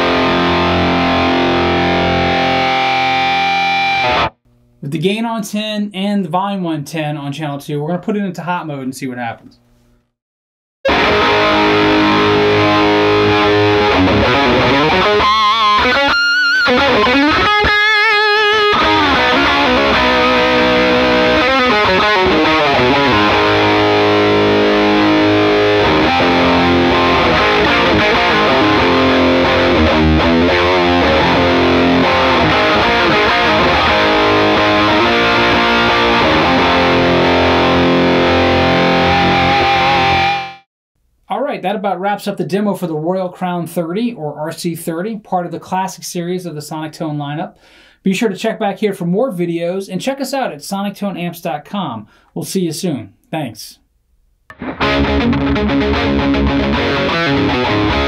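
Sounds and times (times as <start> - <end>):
overdriven electric guitar: 0.0 - 4.4, 10.8 - 40.6, 54.5 - 58.0.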